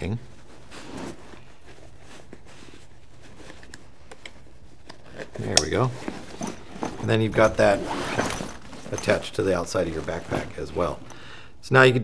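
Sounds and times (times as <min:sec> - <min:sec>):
nylon straps rustling: 0:00.0 - 0:11.4
low room hum: 0:00.0 - 0:12.0.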